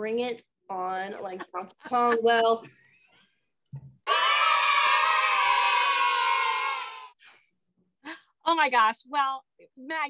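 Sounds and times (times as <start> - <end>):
crowd cheering and screaming: 4.1 - 7.2.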